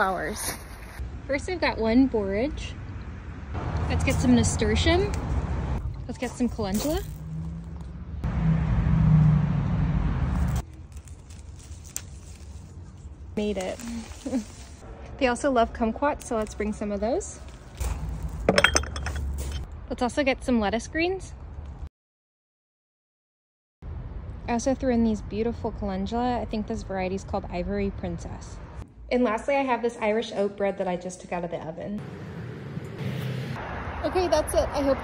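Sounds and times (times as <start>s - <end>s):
outdoor background noise: 0.0s - 21.9s, 23.8s - 35.0s
glass jars clinking: 18.4s - 19.6s.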